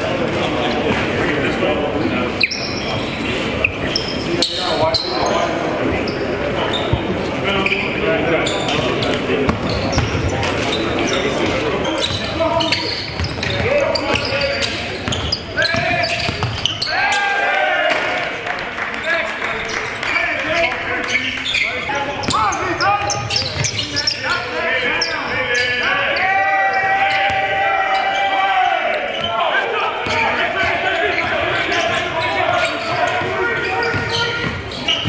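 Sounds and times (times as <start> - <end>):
basketballs bouncing on hardwood: 9.5 - 10.4, 15.0 - 16.8, 33.2 - 35.0.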